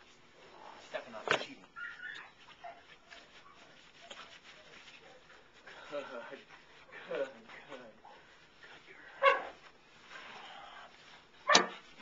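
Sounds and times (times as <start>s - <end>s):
puppy whimpering softly: 1.8s - 2.8s.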